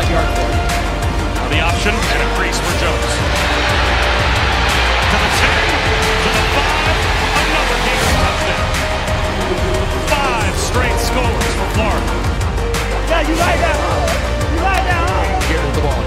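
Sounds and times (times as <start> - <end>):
background music with low bass: 0.0 - 16.0
stadium crowd cheering: 1.5 - 16.0.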